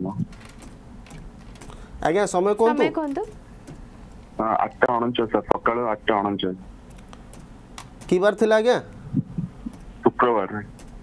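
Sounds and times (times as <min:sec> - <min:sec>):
people talking: 0:02.0 - 0:03.4, 0:04.4 - 0:06.6, 0:10.0 - 0:10.7.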